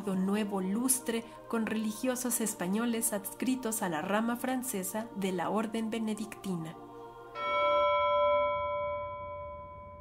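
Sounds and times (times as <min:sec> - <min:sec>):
bell-like chime note: 0:07.4 - 0:10.0.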